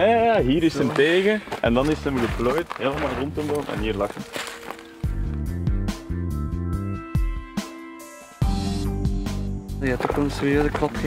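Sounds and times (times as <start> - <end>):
background music with bass and drums: 0.0 - 11.0.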